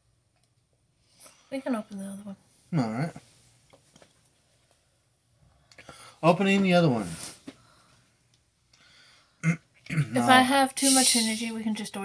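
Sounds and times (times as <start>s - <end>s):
throat sound: 9.4s - 10.2s
faint hiss: 10.8s - 11.7s.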